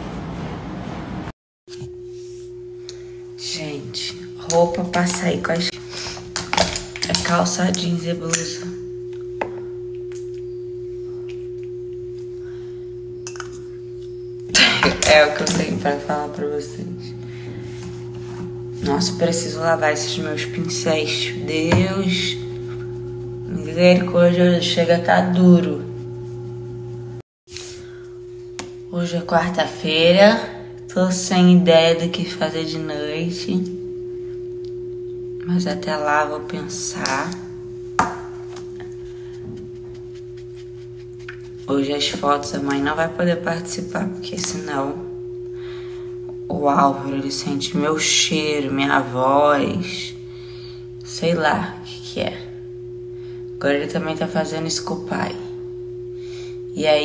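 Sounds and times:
steady single-pitched hum: 1.7 - 57.0.

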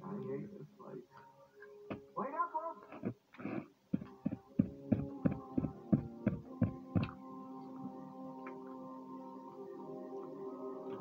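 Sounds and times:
soundtrack music with steady beat: 4.0 - 11.0.

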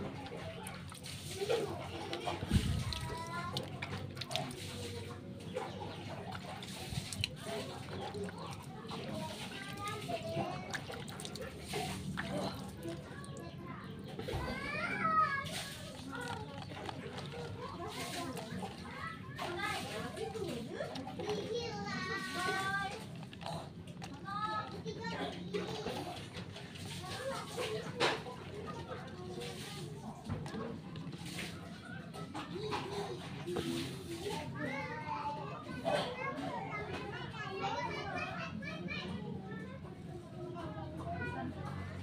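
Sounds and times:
children chattering: 0.0 - 42.0.

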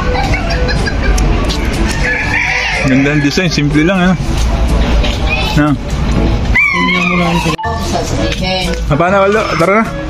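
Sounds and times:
rooster crowing: 1.9 - 3.6.

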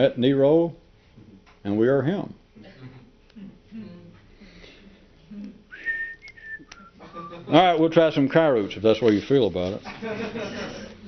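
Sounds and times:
person whistling: 5.7 - 7.4.

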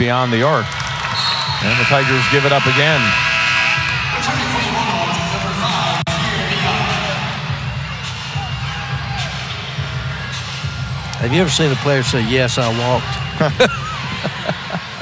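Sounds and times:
music over loudspeakers: 0.0 - 15.0
crowd murmur: 1.6 - 15.0.

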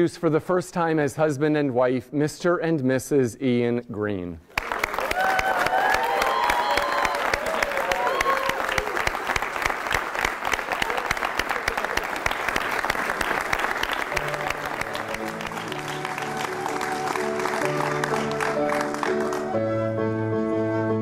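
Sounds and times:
congregation applauding: 4.5 - 19.9
people cheering: 4.6 - 19.8
music: 13.4 - 21.0.

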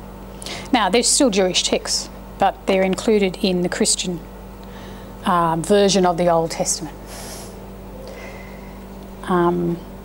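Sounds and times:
low room hum: 0.0 - 10.0
intake of breath: 7.1 - 8.8.

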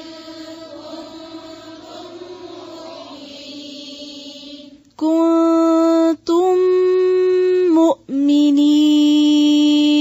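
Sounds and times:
soft chanted recitation: 0.0 - 10.0.

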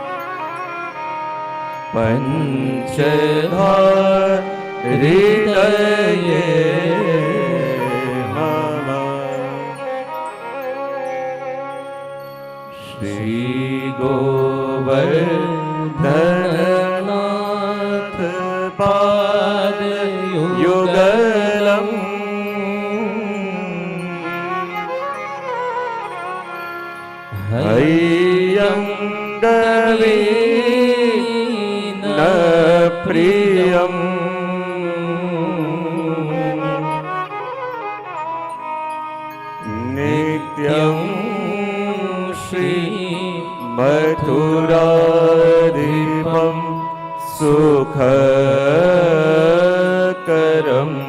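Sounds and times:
man chanting in long notes: 1.9 - 10.3, 39.6 - 51.0.

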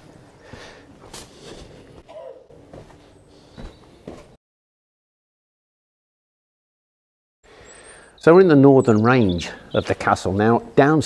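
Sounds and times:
soft footsteps on dirt and stone: 0.0 - 4.4.

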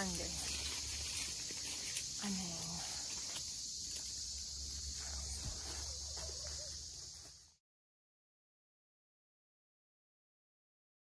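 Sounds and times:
high-pitched insect drone: 0.0 - 7.6.

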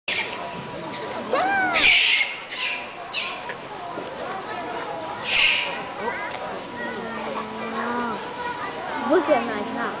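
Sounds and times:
monkeys giving harsh calls: 0.9 - 3.4, 5.2 - 5.9.

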